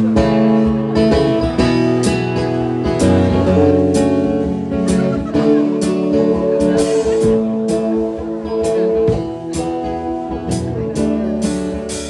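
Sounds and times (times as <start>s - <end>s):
acoustic guitars strumming: 0.0s - 12.0s.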